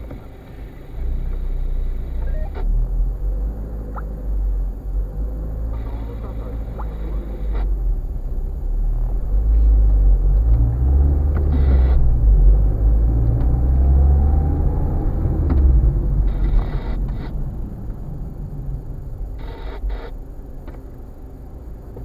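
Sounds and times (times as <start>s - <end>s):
car engine and road rumble: 0.0s - 22.0s.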